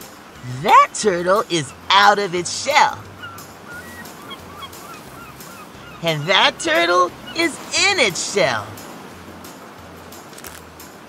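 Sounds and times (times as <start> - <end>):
surf washing: 0.0 - 11.0
bird calls: 1.7 - 8.8.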